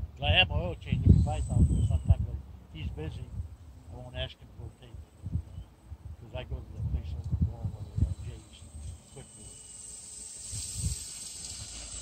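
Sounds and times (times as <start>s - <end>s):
model plane motors hissing: 0.7s - 2.2s, 7.4s - 12.0s.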